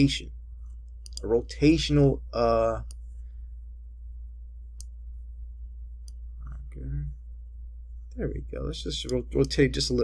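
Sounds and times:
steady low hum: 0:00.0 - 0:10.0
computer mouse clicking: 0:00.9 - 0:01.3.

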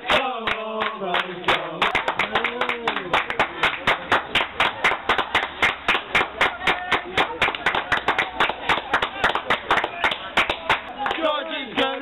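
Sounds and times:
crowd clapping in rhythm: 0:00.0 - 0:12.0
crowd voices: 0:00.0 - 0:12.0.

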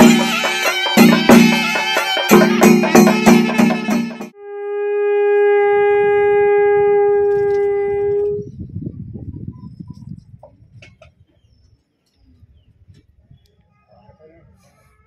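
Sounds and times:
conch shell blown: 0:00.0 - 0:08.6.

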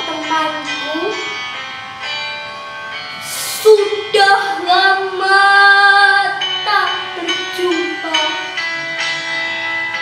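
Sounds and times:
girl singing: 0:00.0 - 0:01.4, 0:03.2 - 0:08.6.

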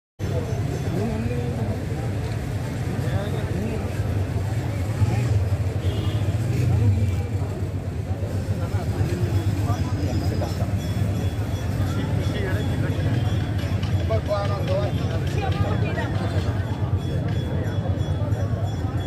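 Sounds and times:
people talking indistinctly: 0:00.2 - 0:19.0
road traffic rumble: 0:00.2 - 0:19.0.

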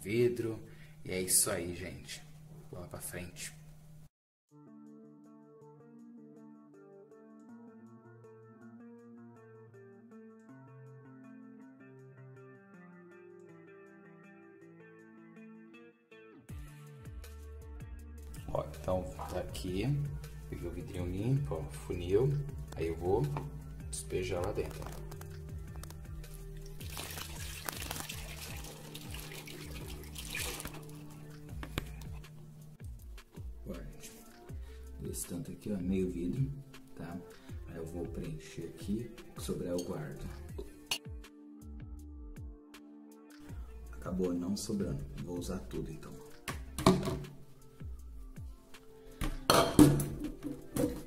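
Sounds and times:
background music: 0:00.0 - 0:51.0
liquid pouring and splashing into jar: 0:25.8 - 0:32.1, 0:49.3 - 0:51.0
glass jar and bottles clinking: 0:49.3 - 0:51.0.

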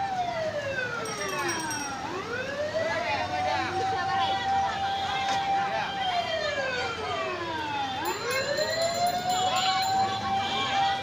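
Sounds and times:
street noise: 0:00.0 - 0:11.0
people chattering: 0:00.8 - 0:11.0.

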